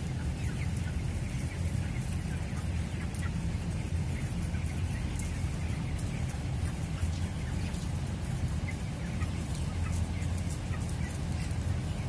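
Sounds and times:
chickens peeping and clucking: 0.0s - 12.0s.

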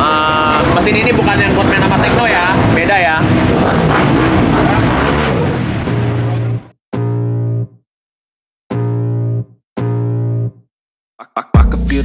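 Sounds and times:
motorcycle engines revving: 0.0s - 6.7s.

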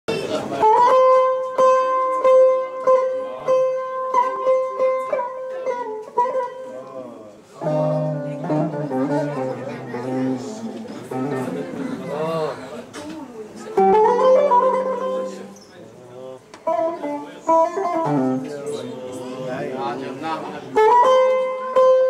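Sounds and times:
plucked lute: 0.1s - 15.7s, 16.5s - 22.0s.

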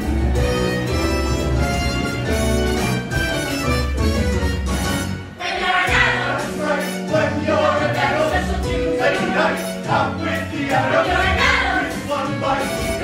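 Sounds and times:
instrumental accompaniment with bass: 0.0s - 13.0s
cast singing as a choir: 5.4s - 13.0s.

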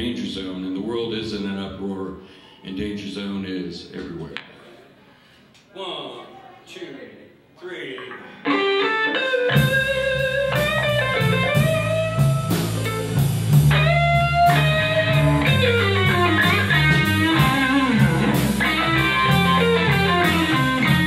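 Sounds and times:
electric guitar lead line: 8.4s - 21.0s
drum kit: 9.4s - 21.0s
electric bass: 9.4s - 21.0s.

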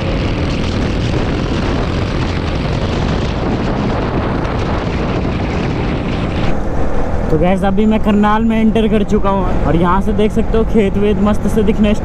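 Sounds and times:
motorcycle engine and tyre roar: 0.0s - 12.0s
wind rushing over microphone: 0.0s - 12.0s.

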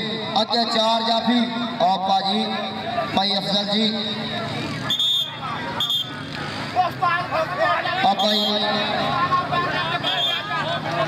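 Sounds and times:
men calling out and talking: 0.0s - 11.0s
outdoor crowd chatter: 0.0s - 11.0s.

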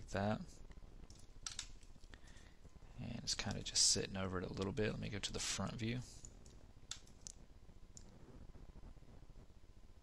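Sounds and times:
low background hum: 0.0s - 10.0s
computer mouse clicks: 1.0s - 2.4s, 6.2s - 7.4s.

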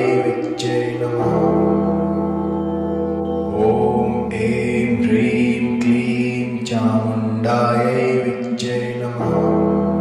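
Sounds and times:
person chanting a mantra: 0.0s - 2.7s, 3.4s - 10.0s
sustained drone: 0.0s - 10.0s.

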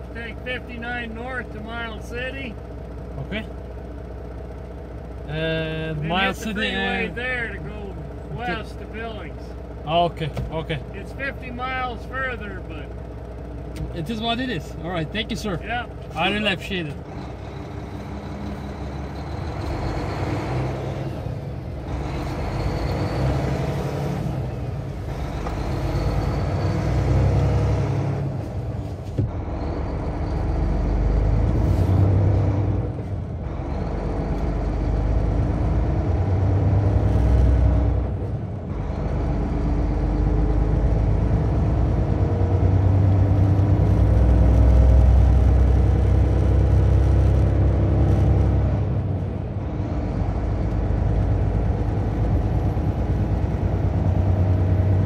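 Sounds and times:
road noise: 0.0s - 55.0s
engine accelerating through gears: 12.6s - 55.0s.

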